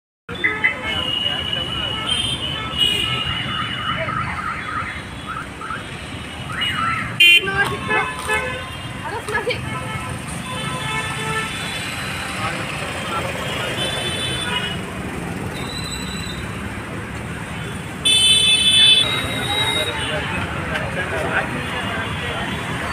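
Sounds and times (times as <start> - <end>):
people's voices: 0.3 - 4.8, 7.3 - 10.4, 18.9 - 22.9
road traffic: 0.3 - 22.9
car horn toot: 6.5 - 9.0, 17.6 - 20.2.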